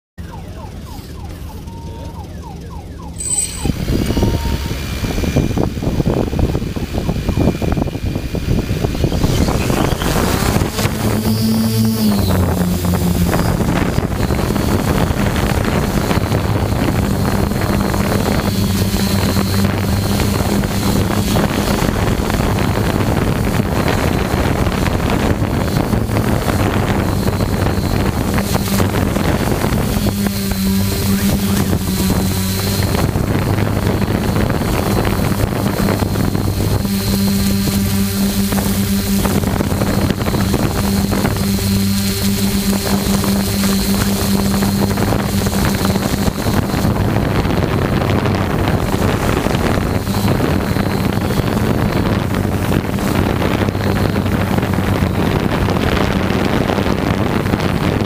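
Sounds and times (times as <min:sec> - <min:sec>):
drone motors humming: 0:00.2 - 0:58.0
wind on microphone: 0:03.2 - 0:58.0.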